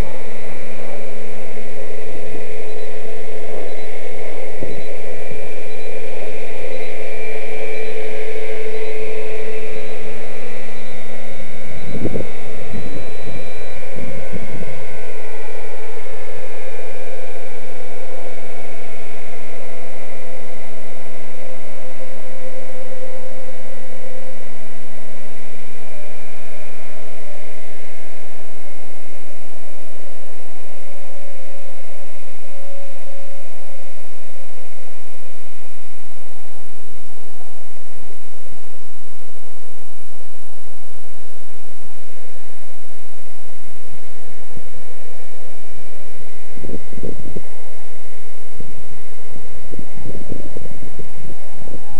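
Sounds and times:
model helicopter whine: 0.0s - 29.4s
steady hiss: 0.0s - 51.9s.

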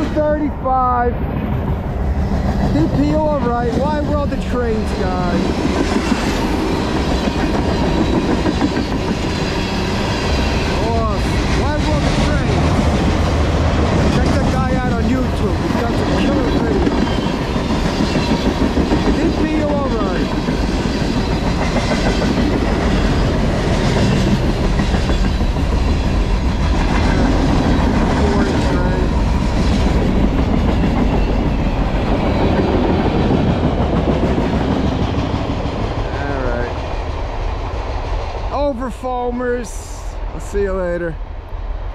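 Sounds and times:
train wheels clicking over rail joints: 1.3s - 36.4s
train wheels squealing: 16.1s - 18.6s.

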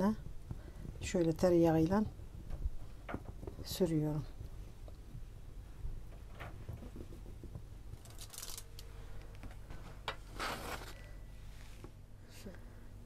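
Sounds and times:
low steady hum: 0.0s - 13.0s.

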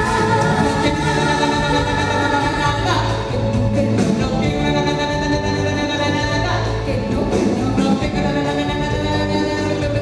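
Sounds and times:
women singing into microphones: 0.0s - 10.0s.

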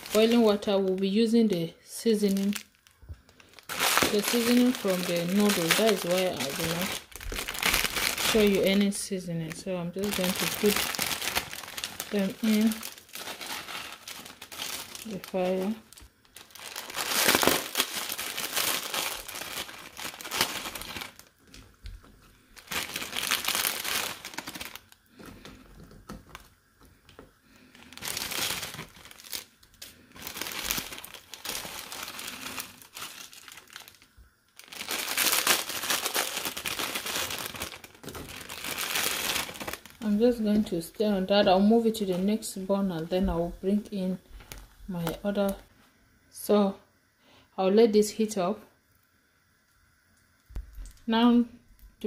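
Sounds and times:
plastic packets crinkling: 0.0s - 43.2s, 43.8s - 45.6s.

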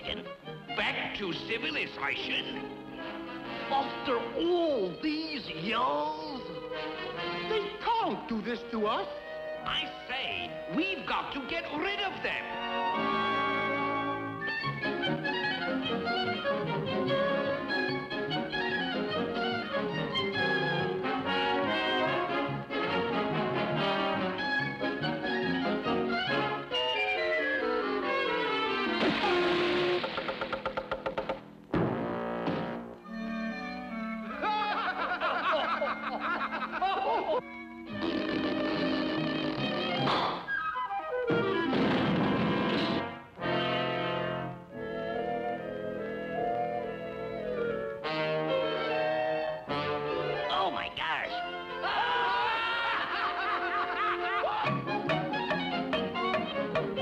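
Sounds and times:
orchestral cartoon music: 0.0s - 57.0s
brass falling notes: 31.7s - 34.3s, 37.9s - 50.8s
cartoon ghosts giggling: 34.2s - 37.4s
sudden crash: 41.6s - 43.1s.

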